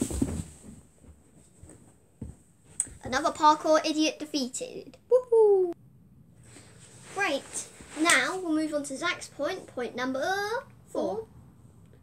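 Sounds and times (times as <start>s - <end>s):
body thudding onto floor: 0.0s - 2.4s.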